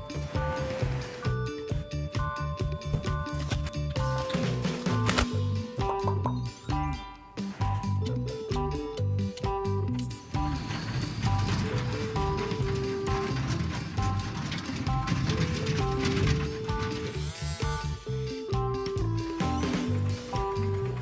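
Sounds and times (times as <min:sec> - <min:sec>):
background music: 0:00.0 - 0:21.0
toy truck electric motor whirring: 0:10.1 - 0:18.4.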